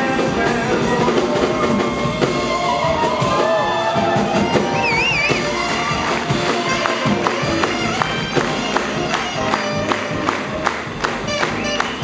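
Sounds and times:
man singing: 0.0 - 3.5
drums: 0.0 - 12.0
piano: 0.0 - 12.0
upright double bass: 0.0 - 12.0.

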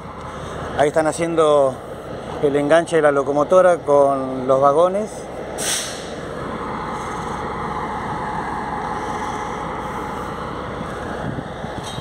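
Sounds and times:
vehicle engine noise: 0.0 - 12.0.

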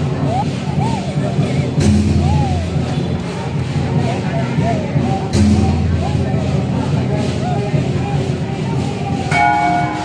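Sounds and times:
bell ringing: 9.3 - 10.0.

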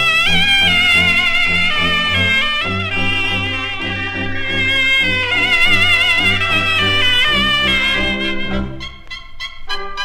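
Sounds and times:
pulsing low brass: 0.0 - 9.1
cobla band playing: 0.0 - 10.0
high melody with vibrato: 0.0 - 10.0.

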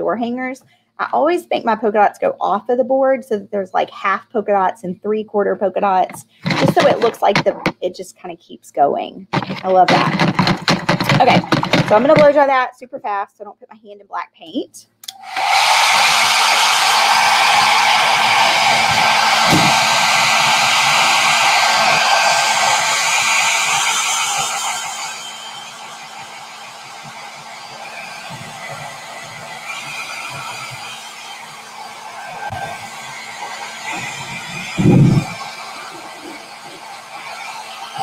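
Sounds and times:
hair dryer blowing: 5.8 - 7.8, 9.3 - 12.4, 15.1 - 38.0
short thump: 19.5 - 19.9.

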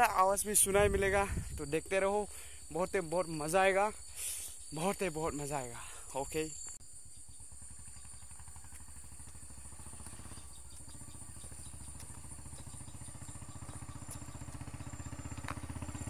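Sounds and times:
motorcycle engine pulsing: 7.0 - 16.0.

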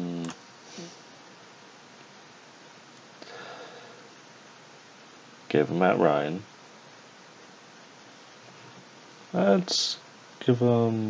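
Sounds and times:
faint steady hiss: 0.0 - 11.0
person breathing through nose: 3.2 - 4.1.

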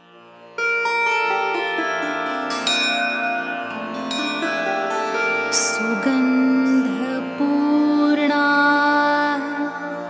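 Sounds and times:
plucked string instrument notes: 0.0 - 10.0
steady drone: 0.6 - 10.0.

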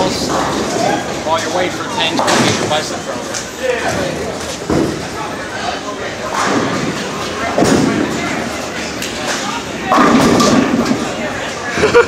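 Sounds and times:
background chatter: 0.0 - 12.0
bowling balls and pins knocking: 6.3 - 8.6, 9.8 - 11.2.

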